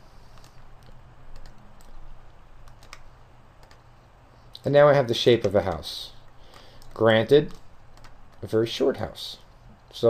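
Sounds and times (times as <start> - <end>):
faint low hum: 0.0 - 10.0
computer mouse clicks: 0.3 - 2.0, 2.6 - 3.8, 6.5 - 8.4.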